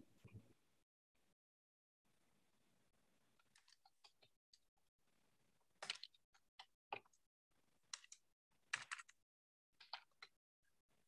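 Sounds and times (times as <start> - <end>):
computer keys clicking: 7.9 - 9.2.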